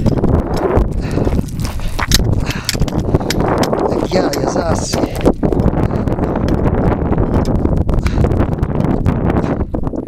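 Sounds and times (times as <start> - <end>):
footsteps on gravel: 0.0 - 6.7
wind rumble on microphone: 0.0 - 10.0.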